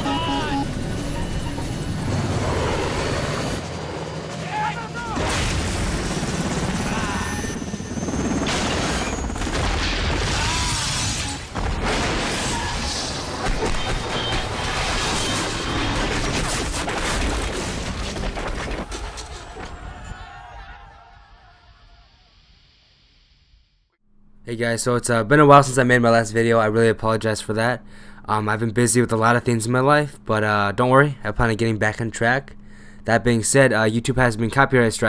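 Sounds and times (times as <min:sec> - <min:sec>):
helicopter rotor and engine: 0:00.0 - 0:10.6
helicopter crashing: 0:00.0 - 0:20.5.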